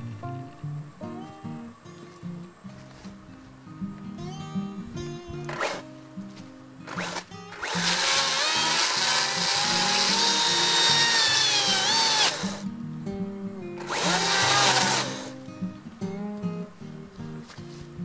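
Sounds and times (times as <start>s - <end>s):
background guitar music: 0.0s - 18.0s
electric chainsaw cutting roots: 5.5s - 5.8s, 6.8s - 12.6s, 13.8s - 15.4s.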